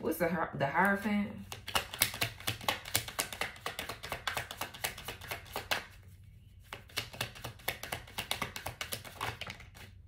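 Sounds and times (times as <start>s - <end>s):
cards being shuffled: 1.4s - 6.0s, 6.6s - 10.0s.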